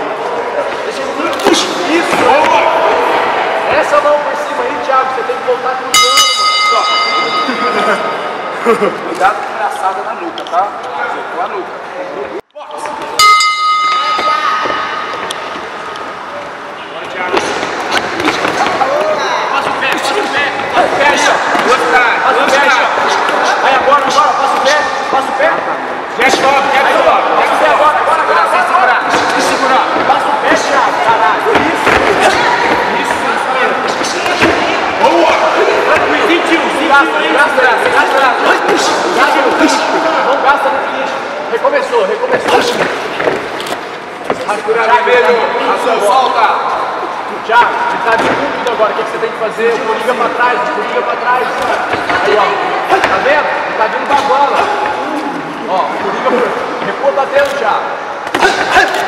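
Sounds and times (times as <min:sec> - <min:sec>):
crowd shouting: 0:01.5 - 0:04.5, 0:30.6 - 0:37.0
boxing ring bell: 0:06.0 - 0:08.4, 0:13.2 - 0:15.1.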